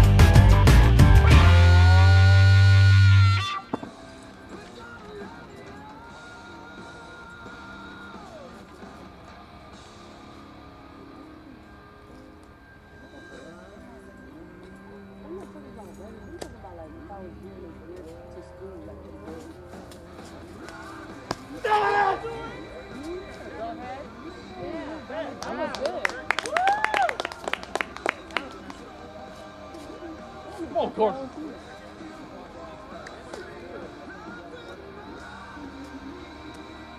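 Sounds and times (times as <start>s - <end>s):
rock guitar music: 0.0s - 12.6s
faint distant voices: 3.4s - 36.9s
man yelling: 21.6s - 22.6s.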